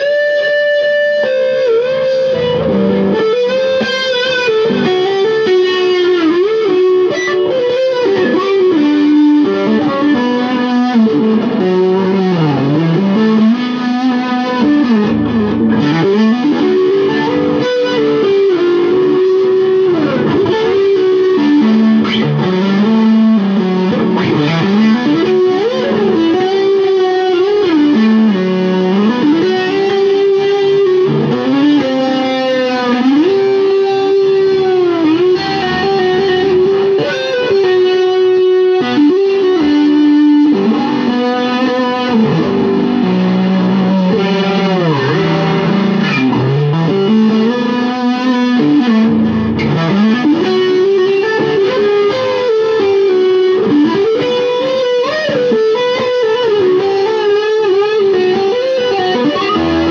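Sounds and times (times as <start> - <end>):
electric guitar lead with bends: 0.0 - 59.9.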